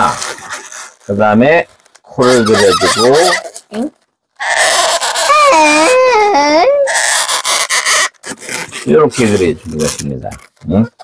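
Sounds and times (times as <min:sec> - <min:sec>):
balloons squeaking under marker: 0:00.0 - 0:11.0.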